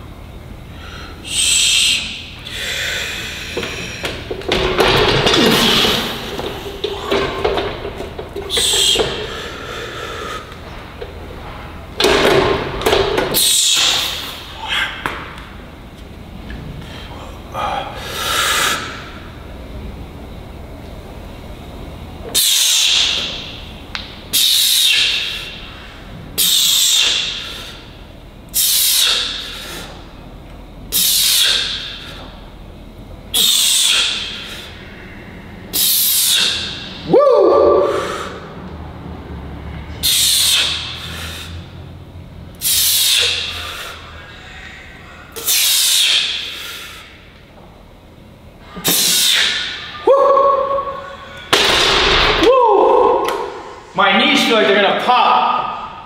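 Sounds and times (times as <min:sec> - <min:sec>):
sharp forced exhales: 0:08.6 - 0:10.7, 0:33.4 - 0:37.0, 0:37.8 - 0:38.6, 0:39.9 - 0:41.8, 0:42.6 - 0:47.3, 0:48.8 - 0:49.8.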